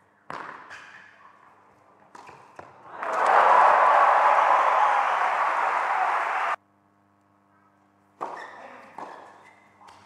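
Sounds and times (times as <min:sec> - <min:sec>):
crowd applause: 0:02.9 - 0:06.6
faint hum: 0:03.1 - 0:08.2.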